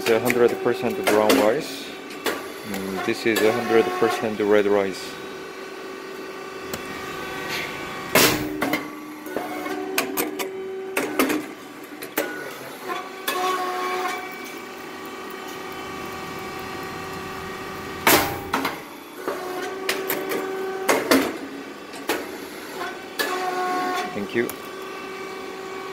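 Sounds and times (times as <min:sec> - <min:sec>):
machine hum: 0:00.0 - 0:25.9
loud pop of rice cake machine: 0:08.1 - 0:10.4, 0:18.0 - 0:18.8.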